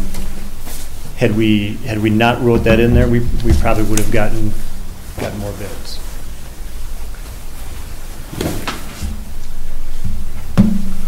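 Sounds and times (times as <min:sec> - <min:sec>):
low steady hum: 0:00.0 - 0:11.0
handling knocks and bumps: 0:02.0 - 0:05.7.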